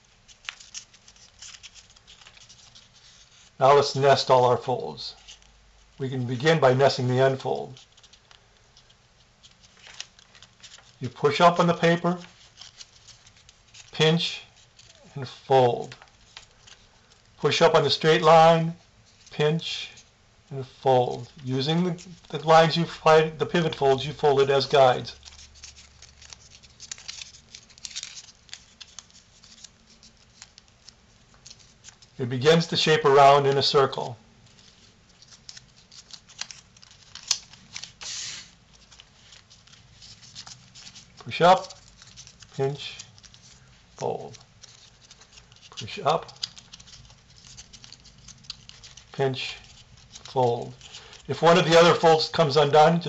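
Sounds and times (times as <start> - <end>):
paper crinkling: 0.0 - 53.0.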